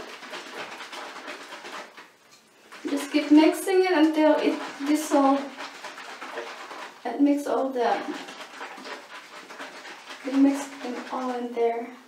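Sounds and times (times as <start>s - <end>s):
liquid sloshing in spray bottle: 0.0s - 12.0s.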